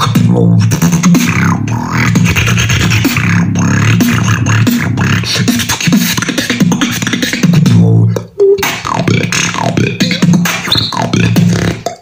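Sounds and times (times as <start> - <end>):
beatboxing: 0.0 - 12.0.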